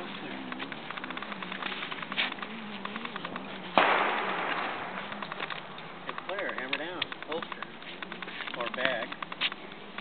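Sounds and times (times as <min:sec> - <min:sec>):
gunshot: 0:03.8 - 0:05.0.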